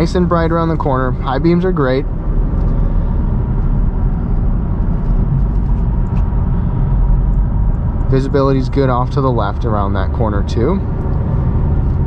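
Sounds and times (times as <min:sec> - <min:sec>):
car engine hum: 0:00.0 - 0:12.0
road and tyre rumble: 0:00.0 - 0:12.0.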